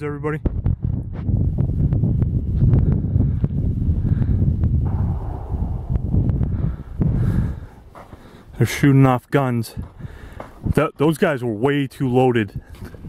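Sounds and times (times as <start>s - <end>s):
wind buffeting microphone: 0.0s - 9.0s, 9.6s - 11.1s, 12.5s - 13.0s.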